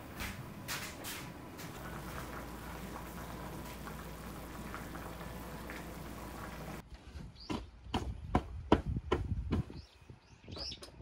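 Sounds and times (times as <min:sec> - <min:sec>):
food crackling and bubbling: 0:00.0 - 0:06.8.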